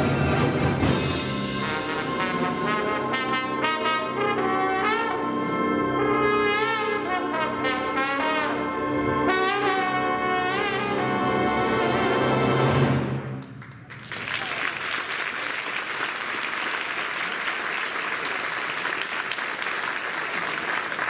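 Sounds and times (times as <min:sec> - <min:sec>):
concert band accompaniment: 0:00.0 - 0:15.2
trombone solo with wide vibrato: 0:00.8 - 0:13.0.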